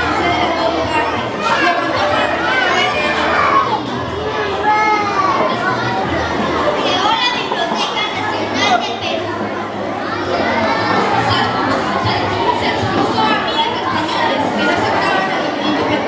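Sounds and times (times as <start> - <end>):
children chattering: 0.0 - 16.0.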